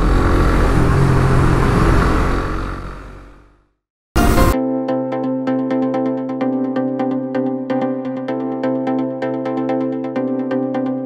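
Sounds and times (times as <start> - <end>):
wind and road noise: 0.0 - 3.7
motorcycle engine running: 0.0 - 4.6.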